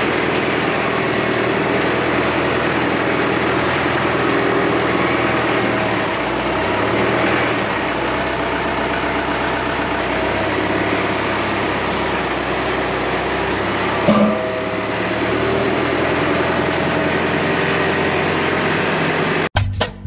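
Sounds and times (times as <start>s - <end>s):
tractor diesel engine running: 0.0s - 19.5s
metallic clunk: 14.0s - 16.6s.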